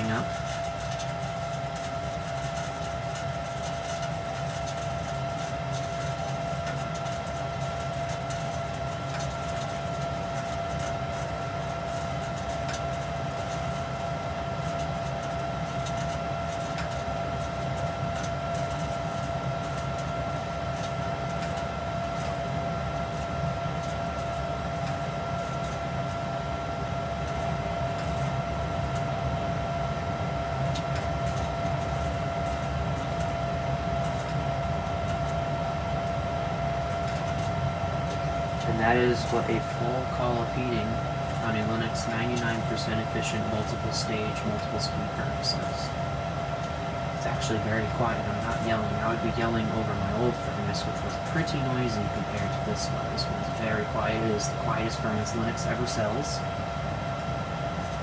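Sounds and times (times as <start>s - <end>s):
furnace rumble: 0.0s - 58.0s
steady whine: 0.0s - 58.0s.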